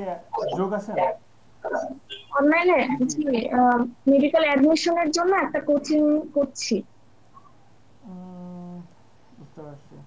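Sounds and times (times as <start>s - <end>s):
person humming: 8.0s - 9.6s.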